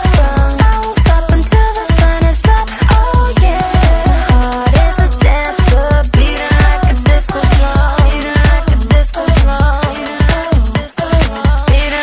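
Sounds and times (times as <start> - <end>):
kick drum beat: 0.0 - 12.0.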